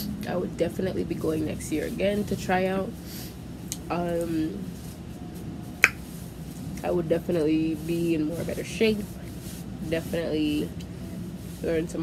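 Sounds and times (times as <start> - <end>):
woman speaking: 0.0 - 3.0, 3.7 - 4.8, 6.8 - 9.2, 9.8 - 10.8, 11.6 - 12.0.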